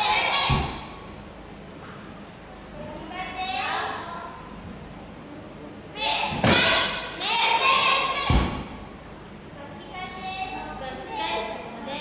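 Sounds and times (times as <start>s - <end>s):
voices calling out: 0.0s - 1.1s, 5.9s - 8.8s.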